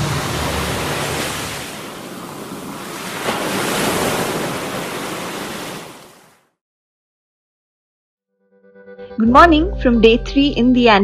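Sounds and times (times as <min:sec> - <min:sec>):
motorboat moving at speed: 0:00.0 - 0:04.0
music track: 0:08.3 - 0:11.0.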